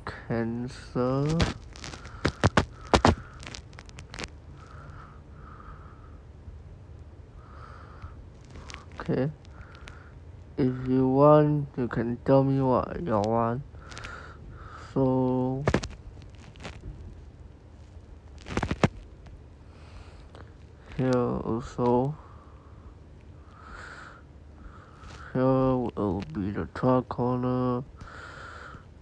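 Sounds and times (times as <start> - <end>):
faint background hum and hiss: 0.0 - 29.0.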